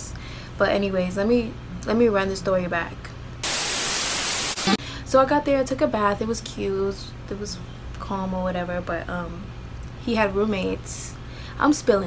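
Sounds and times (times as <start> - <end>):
white noise static burst: 3.4 - 4.8.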